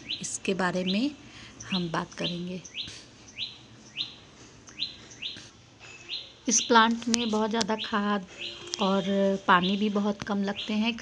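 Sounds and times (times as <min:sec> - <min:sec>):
small bird chirping: 0:00.0 - 0:11.0.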